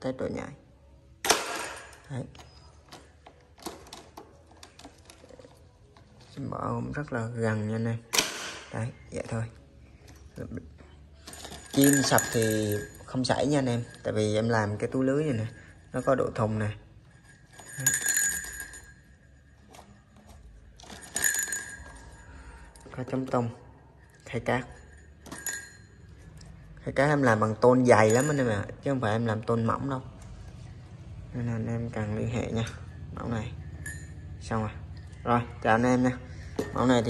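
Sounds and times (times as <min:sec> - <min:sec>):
metallic clicks and rattles of wire trap: 0:11.2 - 0:15.3
metallic clink with ringing: 0:11.2 - 0:26.8, 0:27.4 - 0:29.0, 0:32.4 - 0:35.2.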